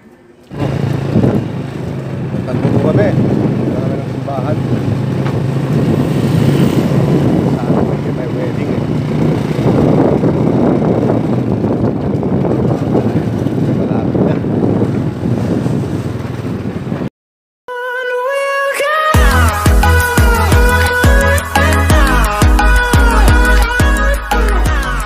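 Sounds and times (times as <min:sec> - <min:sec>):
motorcycle engine hum: 0:00.0 - 0:17.1
wind buffeting microphone: 0:00.5 - 0:17.1.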